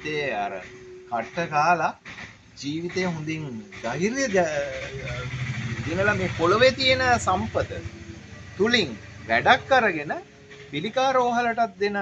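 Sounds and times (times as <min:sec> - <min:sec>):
man speaking: 0:00.0 - 0:02.0, 0:02.6 - 0:07.9, 0:08.6 - 0:10.2, 0:10.8 - 0:12.0
small engine running: 0:03.6 - 0:10.8.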